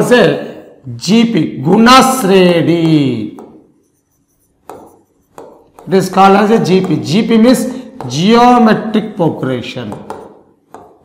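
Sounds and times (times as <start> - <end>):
man speaking: 0.0 - 3.6, 5.8 - 10.2
marker scratching on whiteboard: 2.7 - 11.0.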